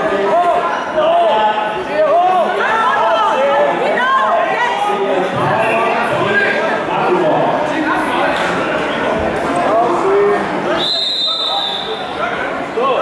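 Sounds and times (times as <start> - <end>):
crowd chatter echoing: 0.0 - 13.0
referee's whistle blast: 10.8 - 12.2.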